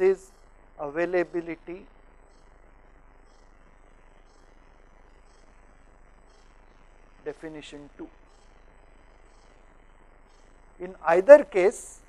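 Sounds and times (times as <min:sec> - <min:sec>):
mains hum and hiss: 0:00.0 - 0:12.0.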